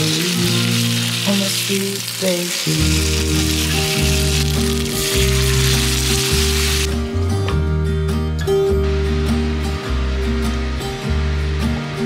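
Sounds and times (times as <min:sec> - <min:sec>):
meat patties sizzling in a pan: 0:00.0 - 0:06.9
background music with bass line: 0:02.7 - 0:12.0.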